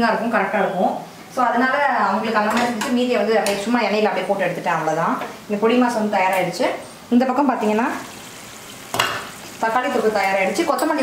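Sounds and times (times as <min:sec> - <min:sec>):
woman talking: 0:00.0 - 0:08.1, 0:09.6 - 0:11.0
metal pots and utensils clinking: 0:08.9 - 0:09.5.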